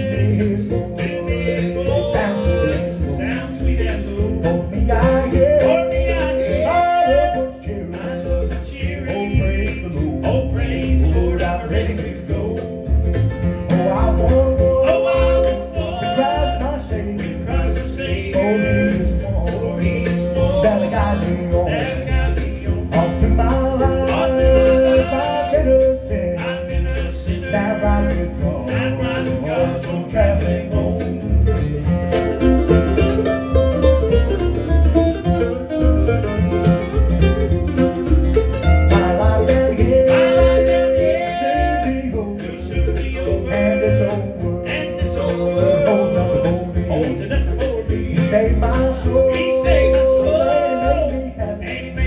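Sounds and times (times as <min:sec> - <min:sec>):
acoustic guitar: 0:00.0 - 0:52.0
mandolin: 0:00.0 - 0:52.0
upright bass thumping: 0:00.0 - 0:52.0.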